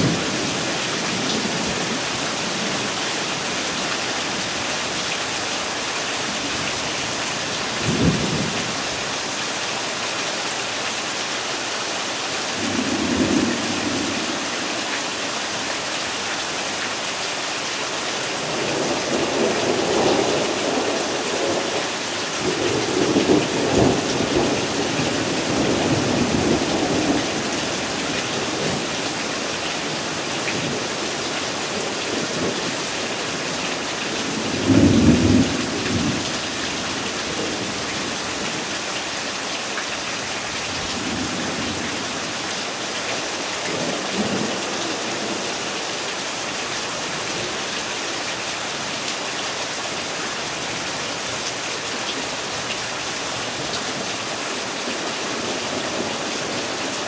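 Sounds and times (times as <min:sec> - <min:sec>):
rain hissing on grass and trees: 0:00.0 - 0:57.0.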